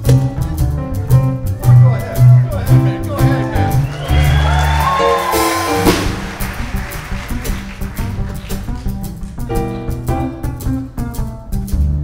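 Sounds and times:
folk-rock band playing: 0:00.0 - 0:12.0
plucked upright bass: 0:00.0 - 0:12.0.

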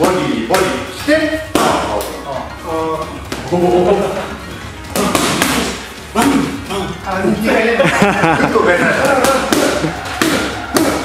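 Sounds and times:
boxing gloves hitting punch mitts: 0:04.9 - 0:06.6, 0:09.0 - 0:11.0.

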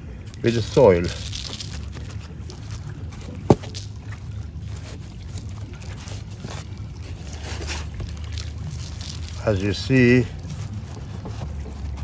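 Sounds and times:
potting mix rustling: 0:00.2 - 0:12.0.

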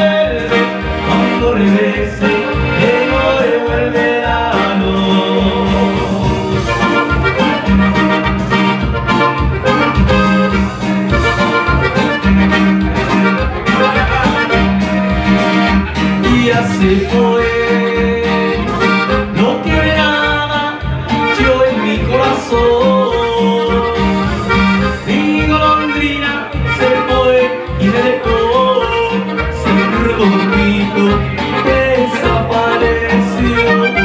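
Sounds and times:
button accordion melody: 0:00.0 - 0:34.0
electronic keyboard accompaniment: 0:00.0 - 0:34.0
steady bass beat: 0:00.0 - 0:34.0.

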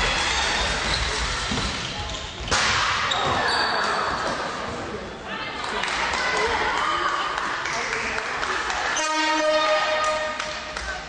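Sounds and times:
echoing hall noise: 0:00.0 - 0:11.0
timing horn buzzy tone: 0:09.0 - 0:10.4.

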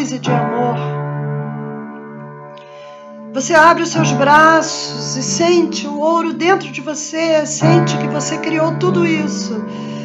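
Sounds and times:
piano chord: 0:00.0 - 0:10.0.

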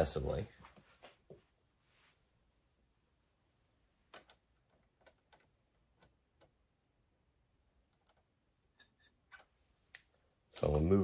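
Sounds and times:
small clicks and taps of parts: 0:04.1 - 0:06.6, 0:07.9 - 0:10.9.

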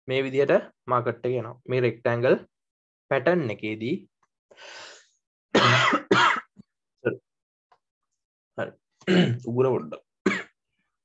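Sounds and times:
man clearing throat: 0:05.6 - 0:06.5, 0:09.1 - 0:09.4, 0:10.3 - 0:10.6.

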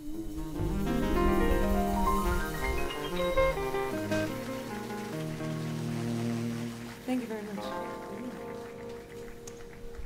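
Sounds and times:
low bass notes: 0:00.0 - 0:07.1
electric guitar notes: 0:00.0 - 0:10.0
jazz combo final chord: 0:00.5 - 0:09.2.

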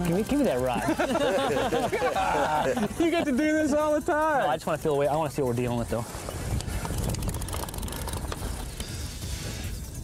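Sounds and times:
fishing reel clicking: 0:00.0 - 0:01.3, 0:02.3 - 0:10.0.

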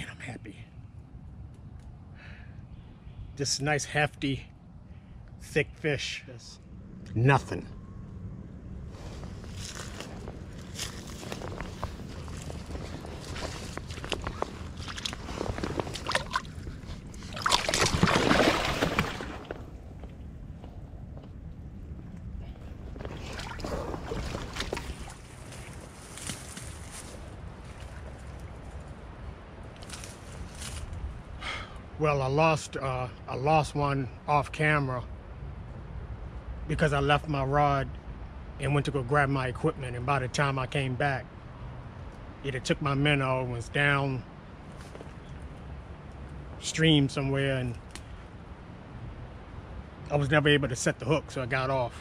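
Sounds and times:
footsteps rustling through dry leaves: 0:09.0 - 0:16.4, 0:25.0 - 0:28.6
fish splashing in shallow water: 0:12.0 - 0:19.8, 0:23.0 - 0:25.7.

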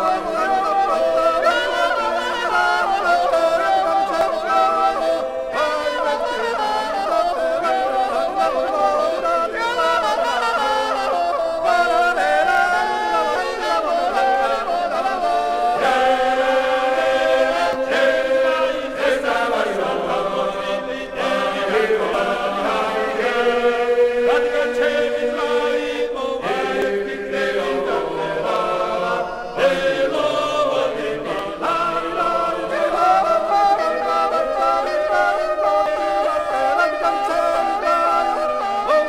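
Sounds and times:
male choir singing unaccompanied: 0:00.0 - 0:39.0.

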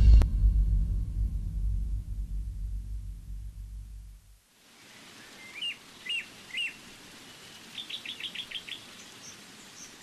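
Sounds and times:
steady hiss: 0:00.0 - 0:10.0
birdsong chirps: 0:04.8 - 0:10.0.

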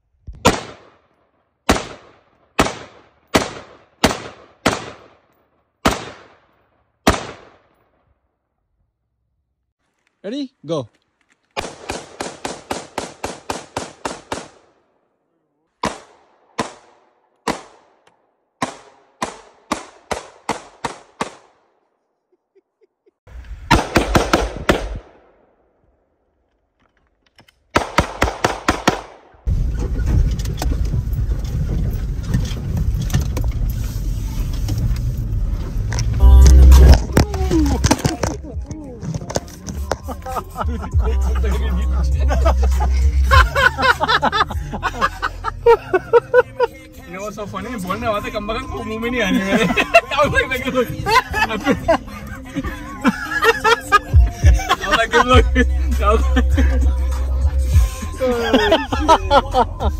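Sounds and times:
rifle shots: 0:00.4 - 0:01.1, 0:01.7 - 0:07.8, 0:11.6 - 0:14.9, 0:15.8 - 0:18.0, 0:18.6 - 0:21.7, 0:23.7 - 0:25.5, 0:27.7 - 0:29.4
car road and engine noise: 0:29.5 - 0:59.9.

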